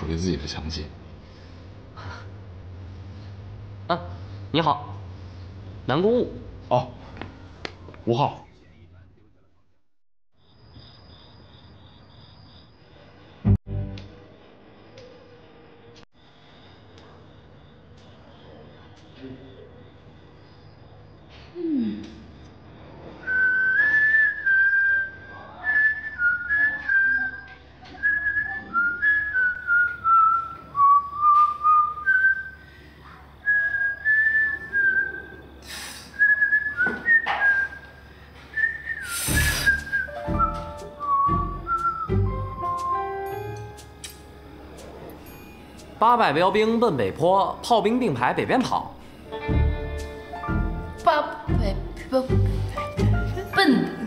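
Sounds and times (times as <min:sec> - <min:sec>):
crickets trilling: 0:10.4 - 0:13.5, 0:14.4 - 0:49.4
insect chirping in pulses: 0:10.4 - 0:13.6, 0:15.4 - 0:27.4, 0:28.0 - 0:49.4
woman whistling: 0:23.2 - 0:32.6, 0:33.5 - 0:35.4, 0:36.2 - 0:43.0
background music with low bass: 0:39.7 - 0:46.0, 0:49.3 - 0:53.7.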